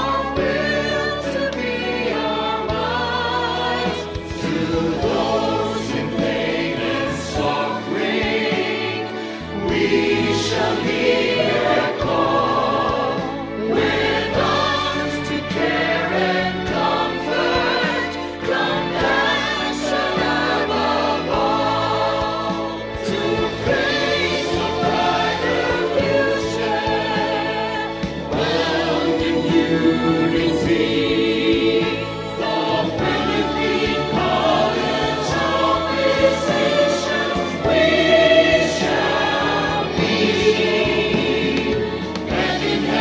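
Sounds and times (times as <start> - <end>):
choir singing a hymn: 0.0 - 43.0
instrumental backing: 0.0 - 43.0.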